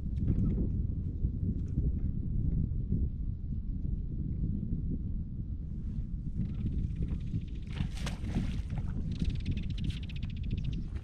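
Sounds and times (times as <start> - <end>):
wind rumble on microphone: 0.0 - 11.0
waves slapping against boat hull: 7.7 - 9.1.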